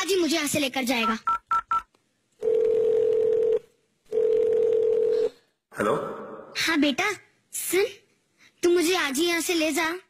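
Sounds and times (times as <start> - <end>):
telephone ringback tone: 2.4 - 5.2.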